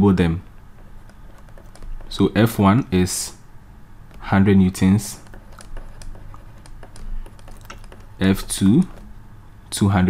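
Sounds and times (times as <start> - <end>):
faint low hum: 0.0 - 10.0
stylus tapping on tablet: 0.7 - 2.2, 5.1 - 9.2.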